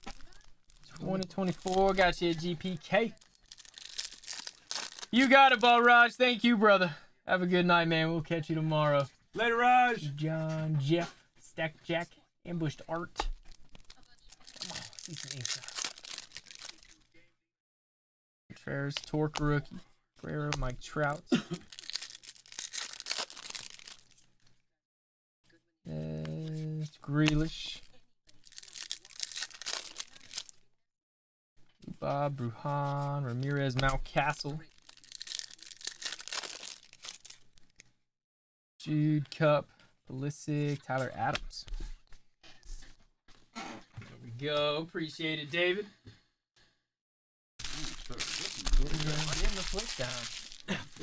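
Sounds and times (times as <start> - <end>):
plastic wrapper crinkling: 0.0 - 5.9, 13.4 - 17.1, 20.6 - 24.4, 28.3 - 30.6, 33.4 - 37.9, 47.6 - 51.0.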